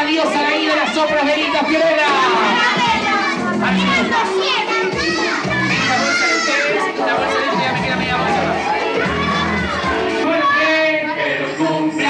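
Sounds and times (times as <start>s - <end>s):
children shouting: 0.1s - 11.9s.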